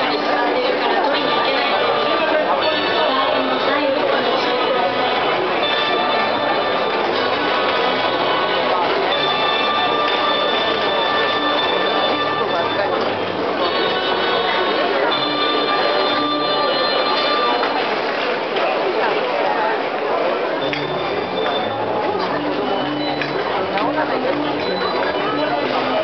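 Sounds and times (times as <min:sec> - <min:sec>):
crowd chatter: 0:00.0 - 0:26.0
high ringing bell-like tones: 0:09.1 - 0:13.2.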